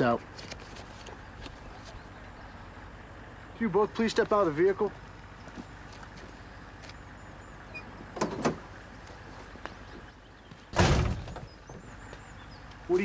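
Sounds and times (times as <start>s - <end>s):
outdoor background noise: 0.0s - 13.0s
truck door slamming shut: 8.2s - 8.6s, 10.7s - 11.6s.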